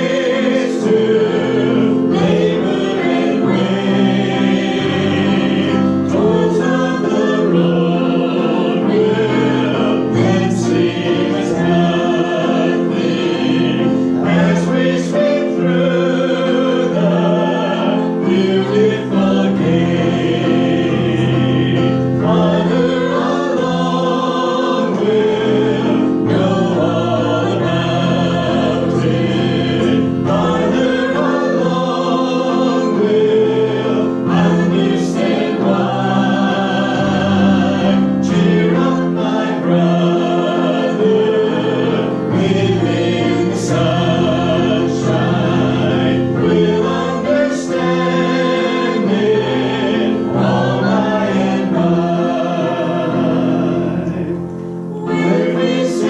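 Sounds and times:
congregation singing a hymn: 0.0s - 56.0s.

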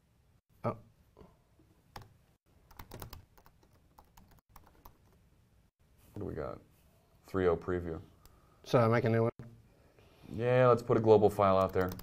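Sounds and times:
laptop keyboard typing: 2.0s - 5.2s, 11.4s - 12.0s.

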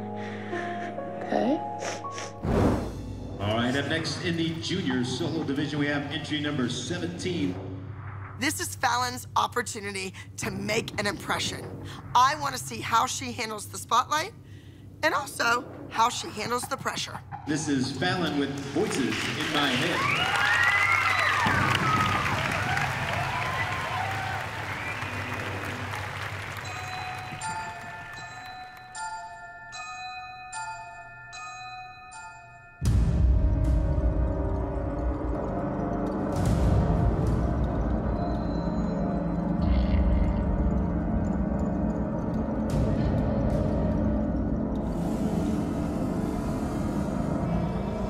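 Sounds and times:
slow dark instrumental music: 0.0s - 8.4s, 23.1s - 48.0s
audience applause: 18.3s - 28.5s
chiming bell-like music: 25.2s - 39.6s.

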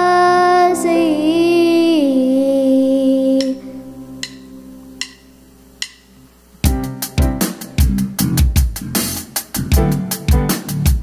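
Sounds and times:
girl singing: 0.0s - 4.1s
sustained keyboard chord: 0.0s - 8.8s.

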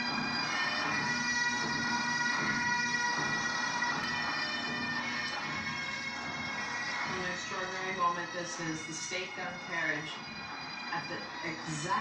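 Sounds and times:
massed bagpipes playing: 0.0s - 12.0s.

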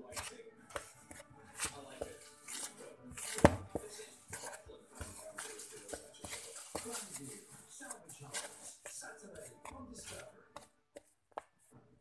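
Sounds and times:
hands mixing in plastic bowl: 0.0s - 11.7s.

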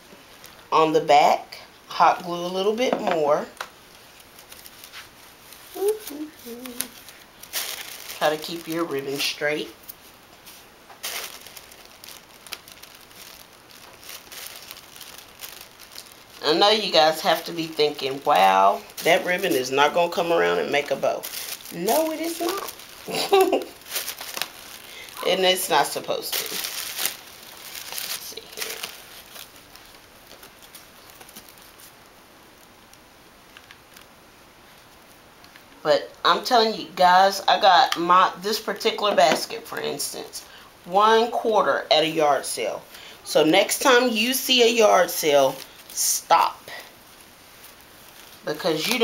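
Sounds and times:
ribbon rustling: 3.3s - 35.8s, 42.8s - 49.0s.

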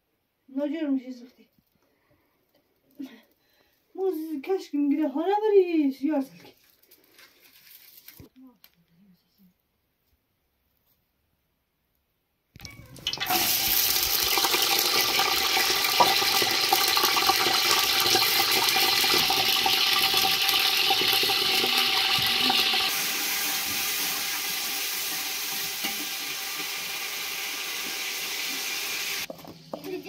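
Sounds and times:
potatoes sizzling in oil: 12.9s - 30.0s.

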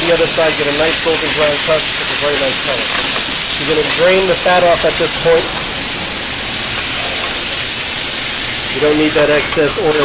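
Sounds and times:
hot oil sizzling in a pan: 0.0s - 10.0s.

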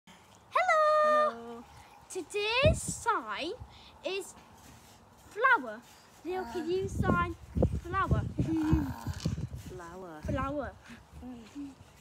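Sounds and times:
child calling out a greeting: 0.5s - 4.3s, 5.4s - 9.2s.

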